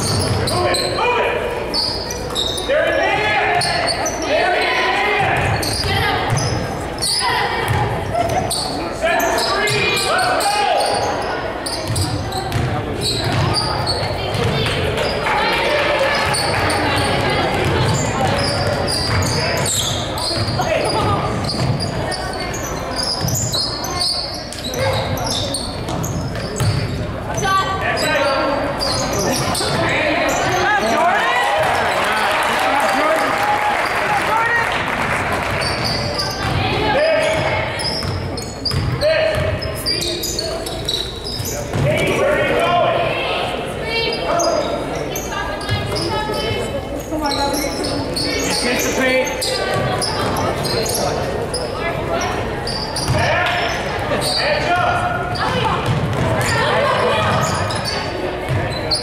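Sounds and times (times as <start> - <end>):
voices calling out: 0.0 - 59.0.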